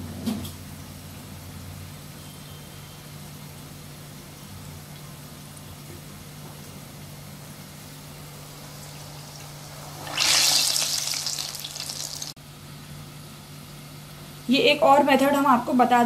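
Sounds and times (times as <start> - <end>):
batter sizzling in hot oil: 0.6 - 12.4.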